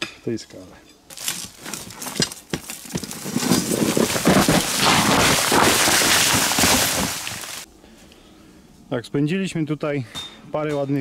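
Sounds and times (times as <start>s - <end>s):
grit and stones scraped and falling: 1.1s - 7.7s.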